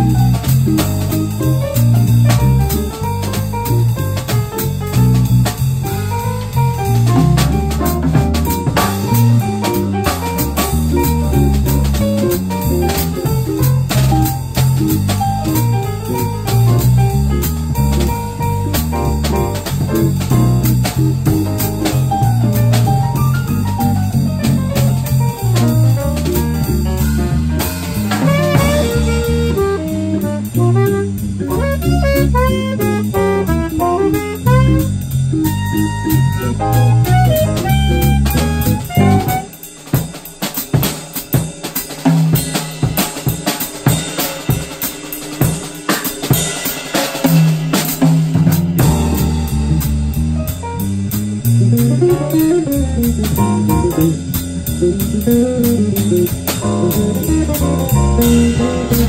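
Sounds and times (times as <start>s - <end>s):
drum kit solo break: 0.0s - 59.0s
jazz combo playing swing: 0.0s - 59.0s.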